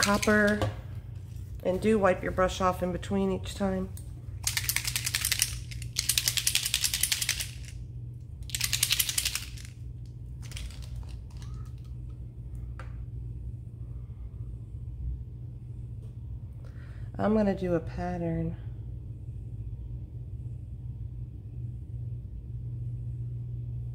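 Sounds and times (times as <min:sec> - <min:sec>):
low hum: 0:00.0 - 0:23.9
spray bottle rattling: 0:04.4 - 0:07.7, 0:08.4 - 0:09.7, 0:10.4 - 0:11.4
bottle and brush clicks: 0:08.4 - 0:09.7.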